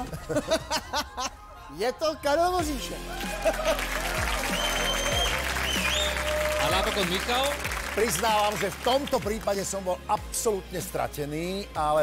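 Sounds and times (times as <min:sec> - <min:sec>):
background music: 0:00.0 - 0:12.0
audience applauding and cheering: 0:02.6 - 0:09.8.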